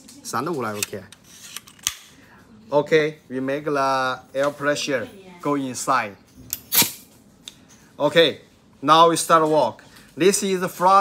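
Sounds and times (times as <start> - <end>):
pneumatic tool clicks: 6.5 - 7.0
sharp burst of air: 6.7 - 7.0.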